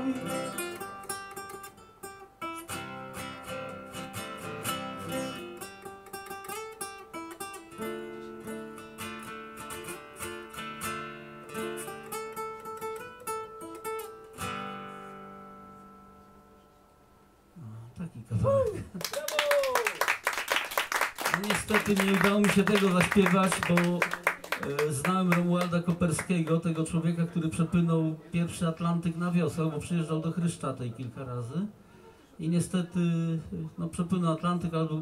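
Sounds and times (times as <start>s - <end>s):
acoustic guitar strumming: 0.0s - 17.3s.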